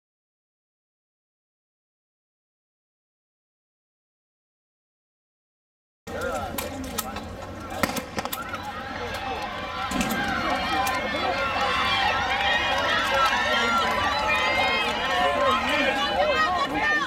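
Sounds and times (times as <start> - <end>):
spectators yelling and cheering: 7.6 - 17.0.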